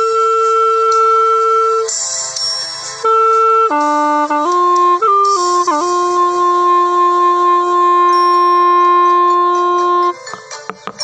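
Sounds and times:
bamboo wind pipe melody: 0:00.0 - 0:11.0.

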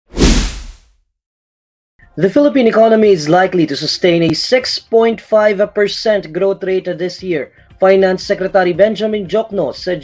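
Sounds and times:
whoosh: 0:00.1 - 0:00.8.

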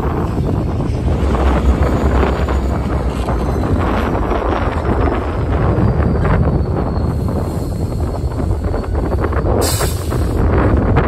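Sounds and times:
freight train rumbling past: 0:00.0 - 0:11.0
wind buffeting microphone: 0:00.0 - 0:11.0.

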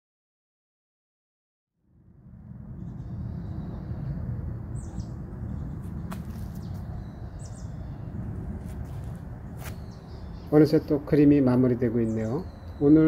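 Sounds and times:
low outdoor rumble: 0:01.8 - 0:12.9
faint bird chirps: 0:12.0 - 0:13.0.

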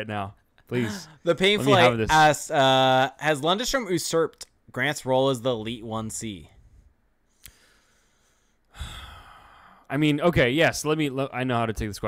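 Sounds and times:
man sighing: 0:08.7 - 0:09.8.

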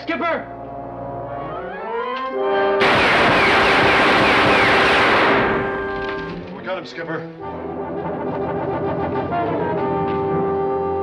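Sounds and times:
pistol shots: 0:02.8 - 0:06.3
dramatic orchestral music: 0:05.0 - 0:11.0.

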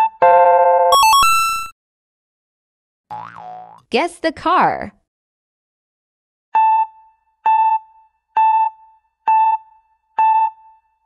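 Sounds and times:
cartoon boing: 0:03.1 - 0:03.9.

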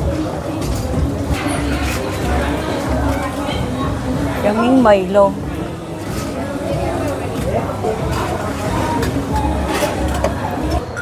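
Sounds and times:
background music: 0:00.0 - 0:11.0
restaurant chatter: 0:00.0 - 0:11.0.

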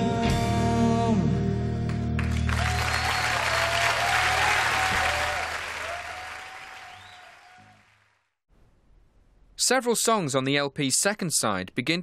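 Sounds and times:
audience applauding and cheering: 0:02.2 - 0:08.3.

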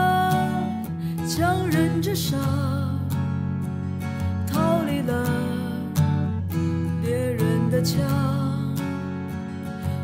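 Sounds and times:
person singing: 0:00.0 - 0:03.3, 0:04.4 - 0:06.4, 0:07.0 - 0:09.1
acoustic guitar: 0:00.0 - 0:10.0.

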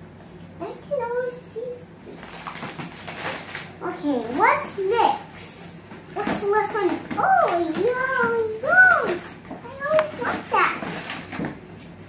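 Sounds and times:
paper rustling and crinkling: 0:02.1 - 0:04.6, 0:09.8 - 0:11.6.

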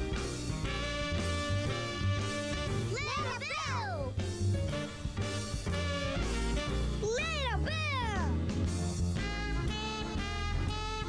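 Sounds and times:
swing children's theme music: 0:00.0 - 0:11.0.

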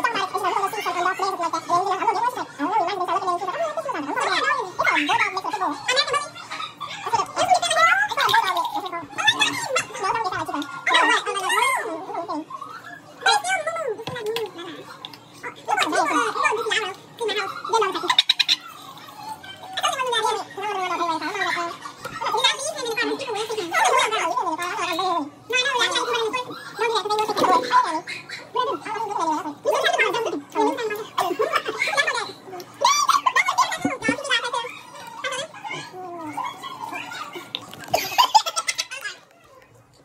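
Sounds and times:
woman talking animatedly: 0:00.0 - 0:12.5, 0:13.2 - 0:18.6, 0:19.7 - 0:36.6.

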